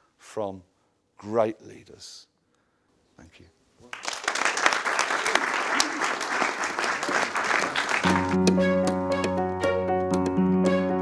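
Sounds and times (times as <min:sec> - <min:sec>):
audience applauding: 0:03.9 - 0:08.9.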